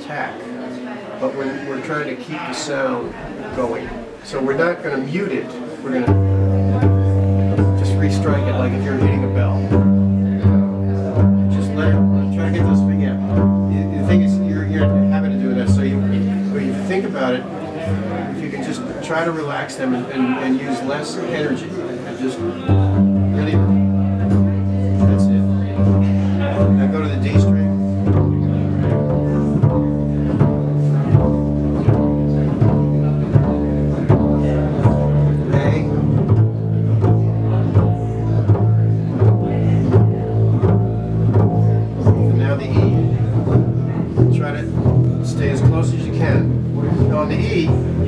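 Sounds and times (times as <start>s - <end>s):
double basses playing pizzicato: 3.0s - 48.0s.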